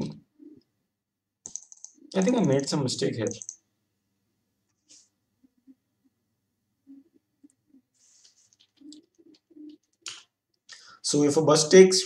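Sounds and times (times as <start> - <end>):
keyboard clicks: 1.4 - 3.6.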